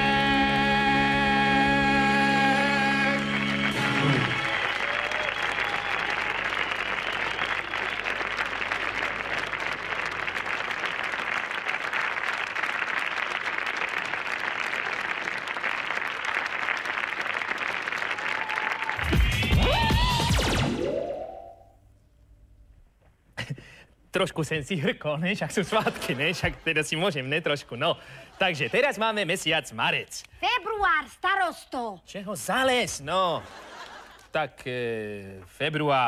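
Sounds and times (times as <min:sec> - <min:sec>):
audience applauding: 0:02.6 - 0:19.9.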